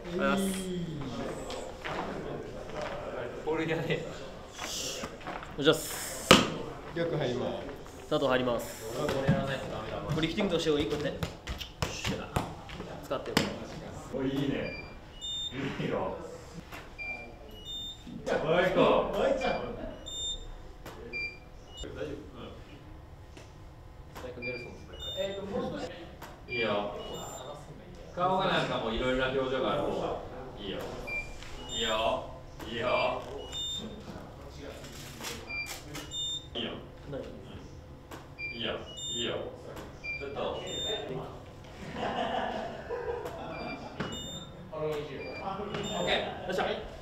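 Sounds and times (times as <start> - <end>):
indistinct voices talking: 0.0 - 11.1
high electronic beeps: 19.4 - 21.9, 24.4 - 25.5, 26.5 - 27.6, 31.1 - 32.2, 32.8 - 34.1, 38.4 - 39.4, 40.0 - 41.2, 43.5 - 44.6, 45.2 - 46.2.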